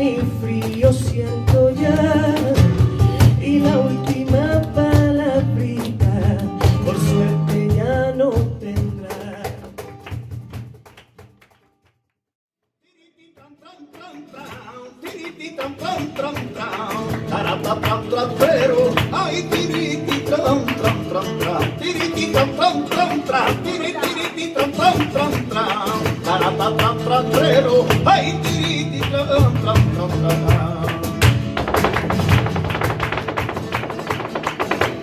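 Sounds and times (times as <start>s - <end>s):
person singing: 0.0s - 9.7s, 12.9s - 31.2s
cajon drum: 0.0s - 11.6s, 13.9s - 35.0s
flamenco guitar: 0.0s - 11.9s, 13.4s - 35.0s
rhythmic hand-clapping: 0.4s - 7.9s, 8.6s - 12.1s, 13.4s - 35.0s.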